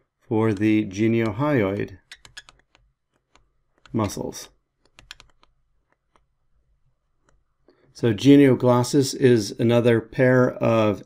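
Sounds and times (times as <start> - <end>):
stylus tapping on pen tablet: 2.1 - 4.0, 4.8 - 6.3.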